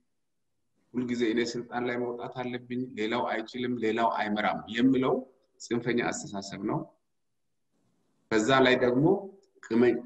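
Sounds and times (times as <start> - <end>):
man talking: 1.0 - 7.0, 8.3 - 10.0.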